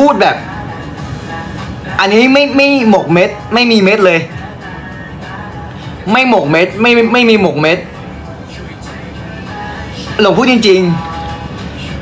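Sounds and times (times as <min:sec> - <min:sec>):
faint background music: 0:00.0 - 0:12.0
steady low hum: 0:00.0 - 0:12.0.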